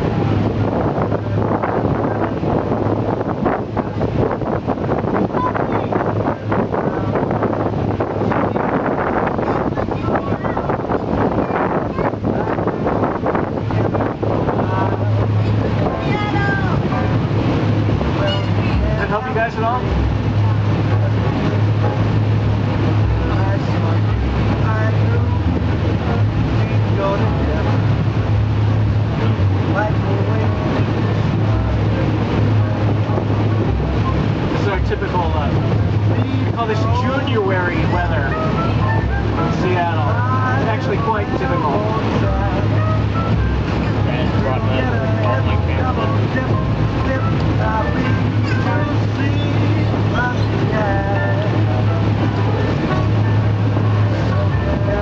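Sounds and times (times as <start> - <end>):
boat engine droning: 0.0 - 55.0
voices: 0.0 - 55.0
music: 10.6 - 55.0.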